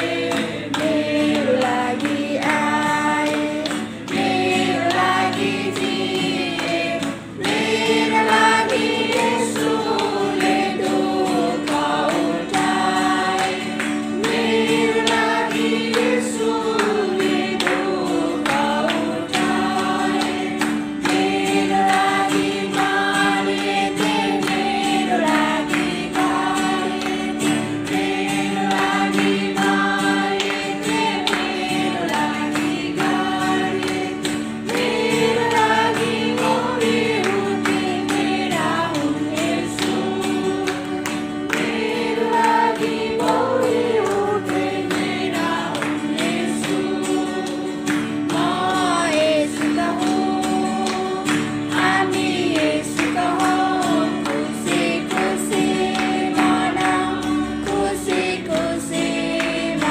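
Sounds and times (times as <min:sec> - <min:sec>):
acoustic guitar chords: 0:00.0 - 0:59.9
group singing worship song: 0:00.0 - 0:59.9.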